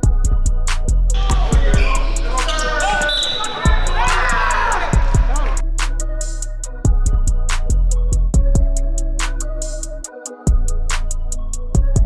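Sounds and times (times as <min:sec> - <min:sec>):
music with a steady beat: 0:00.0 - 0:12.0
players shouting and cheering: 0:01.2 - 0:05.6.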